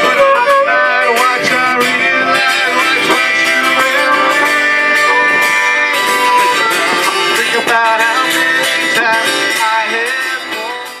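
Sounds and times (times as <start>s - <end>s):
saxophone melody: 0.0s - 9.5s
strummed acoustic guitar: 0.0s - 11.0s.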